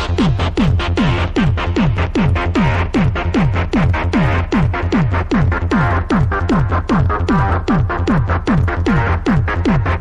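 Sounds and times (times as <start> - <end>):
electronic trance music: 0.0 - 10.0
kick drum: 0.0 - 10.0.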